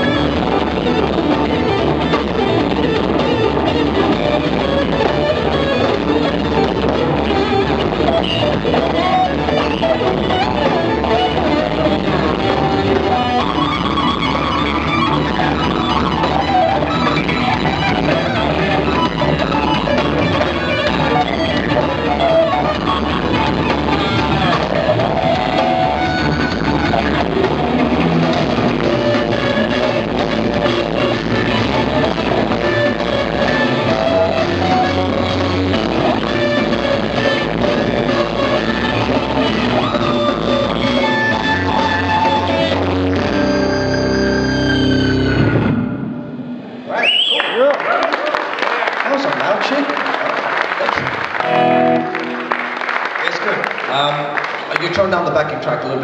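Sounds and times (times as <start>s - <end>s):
rock backing track with drums: 0.0s - 46.8s
electric guitar playing: 0.0s - 46.9s, 50.8s - 56.0s.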